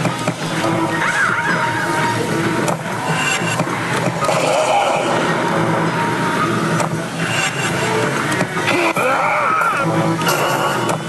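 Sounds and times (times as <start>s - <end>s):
constant roar of gaming parlour: 0.0s - 11.0s
machine music and electronic effects: 0.0s - 11.0s.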